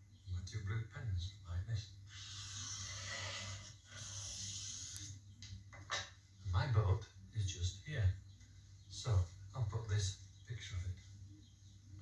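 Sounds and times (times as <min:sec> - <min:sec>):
felt-tip pen drawing on paper: 0:02.1 - 0:05.1.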